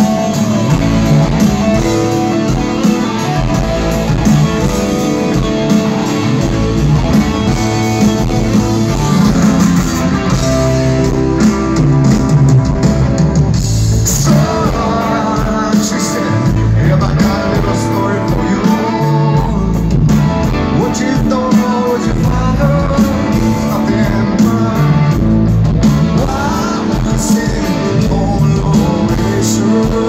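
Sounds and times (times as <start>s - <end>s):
live rock band playing: 0.0s - 30.0s.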